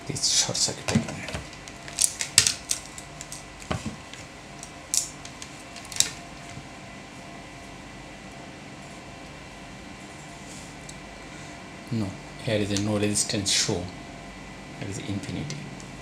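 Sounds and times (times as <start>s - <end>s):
faint steady hum: 0.0s - 16.0s
multimeter probes clicking: 4.6s - 6.2s.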